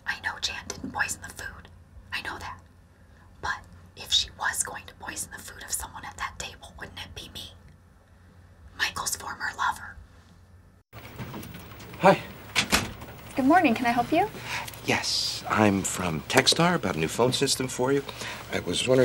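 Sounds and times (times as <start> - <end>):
woman whispering: 0.0 - 2.7, 3.4 - 7.6, 8.8 - 10.0.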